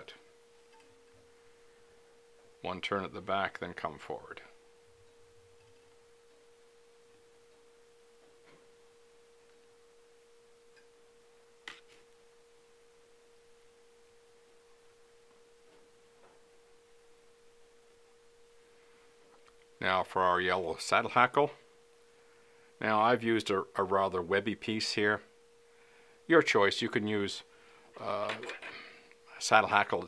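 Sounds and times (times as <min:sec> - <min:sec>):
faint steady hum: 0:00.0 - 0:30.0.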